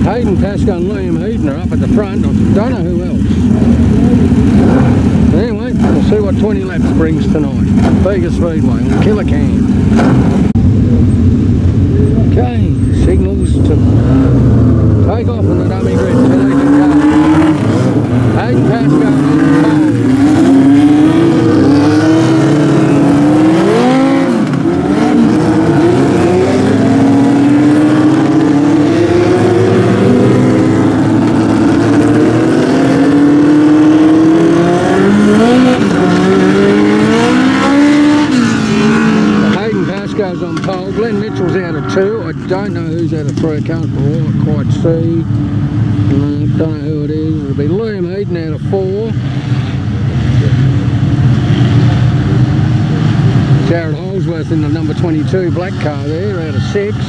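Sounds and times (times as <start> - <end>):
race car engines revving: 0.0 - 57.0
person speaking: 18.3 - 20.8.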